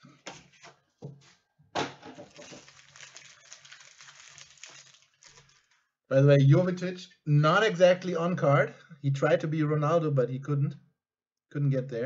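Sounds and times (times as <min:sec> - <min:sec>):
foil card packs rustling: 0:02.1 - 0:05.8.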